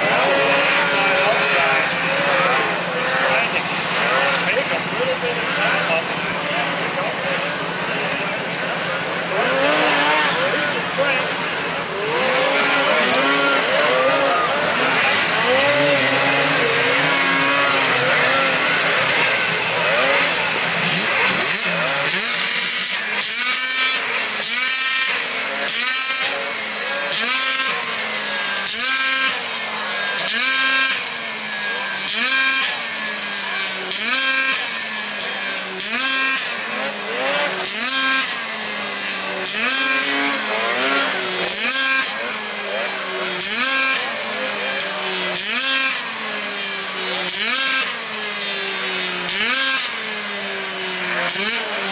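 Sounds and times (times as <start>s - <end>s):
snowmobile engine revving: 0.0s - 51.9s
snowmobile engines at high revs: 0.0s - 51.9s.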